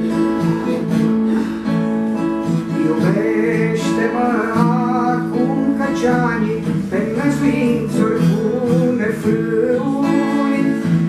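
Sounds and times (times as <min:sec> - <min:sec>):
acoustic guitar strumming: 0:00.0 - 0:11.0
person singing: 0:00.0 - 0:11.0.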